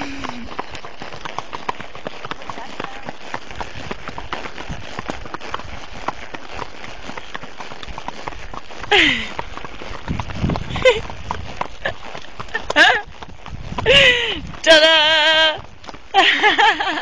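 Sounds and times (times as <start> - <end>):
horse hoofbeats: 0.0 - 17.0.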